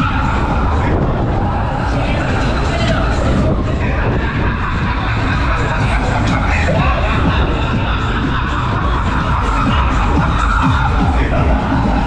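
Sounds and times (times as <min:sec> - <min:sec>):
fairground ride music: 0:00.0 - 0:12.0
wind buffeting microphone: 0:00.0 - 0:12.0.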